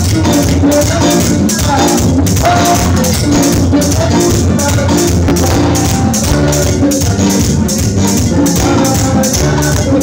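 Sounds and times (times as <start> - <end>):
brass band playing: 2.3 - 7.4.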